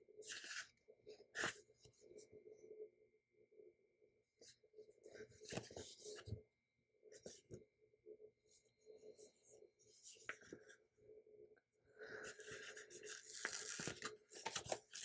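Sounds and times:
paper pages rustling: 0:12.4 - 0:15.0.

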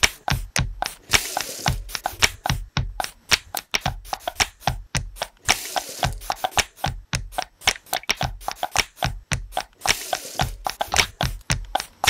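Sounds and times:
deep thumps: 0:00.1 - 0:00.9, 0:01.7 - 0:05.2, 0:06.0 - 0:07.5, 0:08.2 - 0:09.6, 0:10.4 - 0:12.0.

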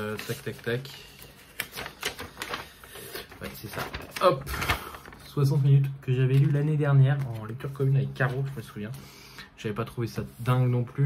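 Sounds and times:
paper peeling and tearing: 0:00.0 - 0:05.3.

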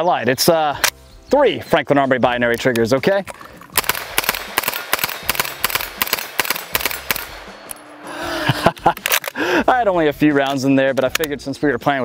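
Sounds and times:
submachine gun rapid fire: 0:03.8 - 0:07.7.

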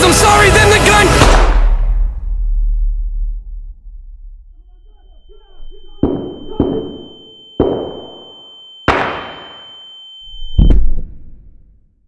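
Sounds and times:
high-pitched ringing tone: 0:04.6 - 0:10.7
echoing gunshots: 0:06.0 - 0:08.2, 0:08.9 - 0:09.6.

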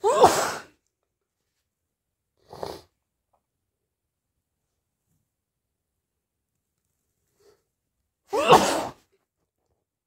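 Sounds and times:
person sneezing: 0:00.0 - 0:00.8, 0:08.3 - 0:09.1.

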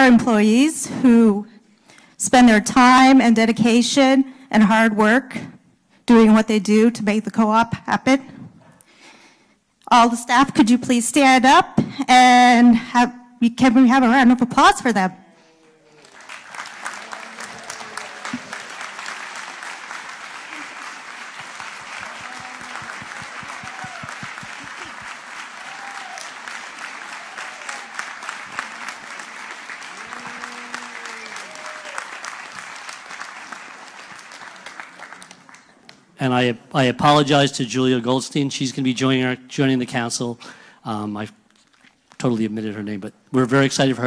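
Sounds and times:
voices: 0:14.1 - 0:19.2, 0:28.4 - 0:32.0
audience applauding: 0:15.6 - 0:36.2.

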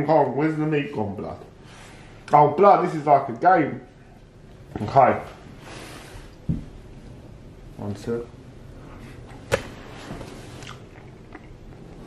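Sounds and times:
person chewing food: 0:10.5 - 0:12.0.

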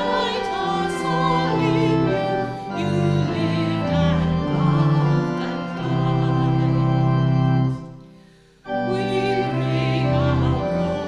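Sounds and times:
church organ chord: 0:00.0 - 0:11.0.

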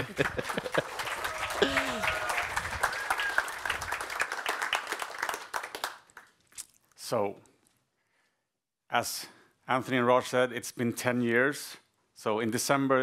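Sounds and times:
person laughing: 0:00.0 - 0:01.0, 0:01.6 - 0:02.3
audience applauding: 0:00.0 - 0:06.3.

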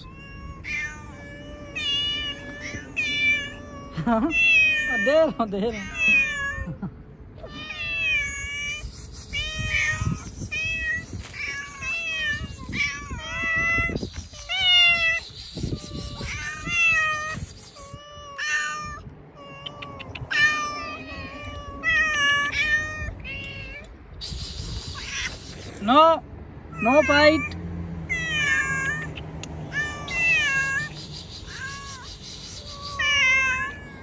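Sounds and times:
cats meowing: 0:00.0 - 0:26.0, 0:26.7 - 0:34.0.

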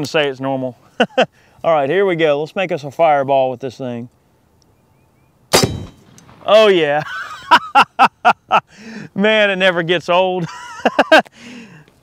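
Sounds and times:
air rifle shot: 0:05.5 - 0:06.8.

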